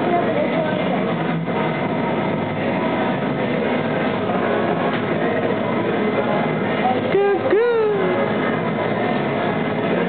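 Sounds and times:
shop room noise: 0.0 - 10.0.

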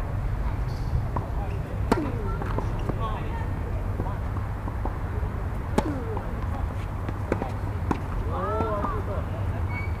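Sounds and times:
racket hitting tennis ball: 1.1 - 3.1, 5.6 - 9.0.

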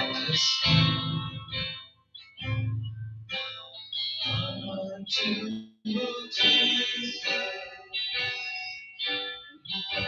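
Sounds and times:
electric guitar with chorus effect: 0.0 - 10.0.

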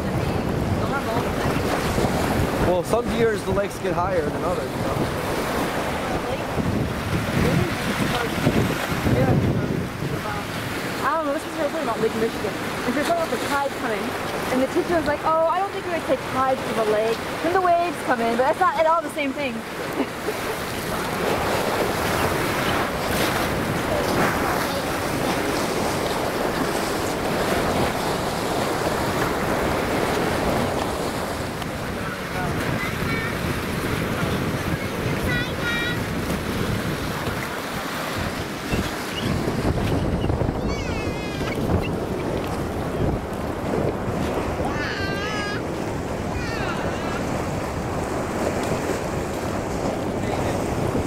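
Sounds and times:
waves splashing against concrete: 0.0 - 51.0
wind buffeting microphone: 0.0 - 51.0.

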